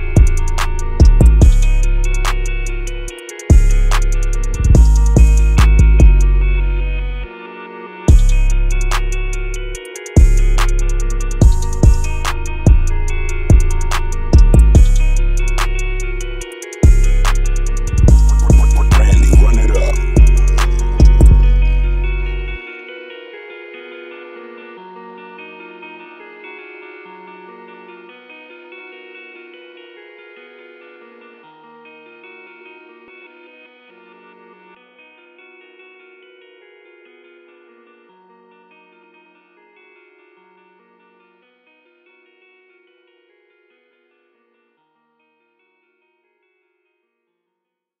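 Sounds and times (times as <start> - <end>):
trap drums: 0.0 - 6.3, 8.1 - 21.8
deep bass: 0.0 - 7.3, 8.1 - 22.6
plucked guitar melody with echo: 0.0 - 46.6.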